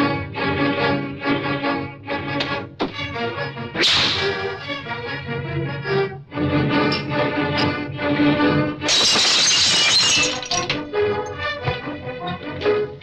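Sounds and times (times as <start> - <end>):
film score music: 0.0 - 8.9, 10.7 - 13.0.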